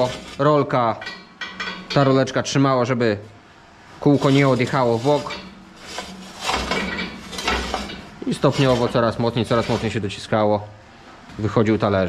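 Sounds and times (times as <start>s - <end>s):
metal scraping and clinking on rolls: 0.0s - 2.4s, 4.0s - 10.3s
machine hum: 0.0s - 12.0s.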